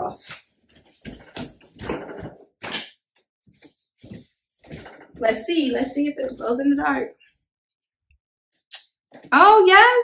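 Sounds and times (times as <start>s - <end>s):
feet shuffling on hardwood floor: 0.2s - 2.3s, 3.5s - 6.9s.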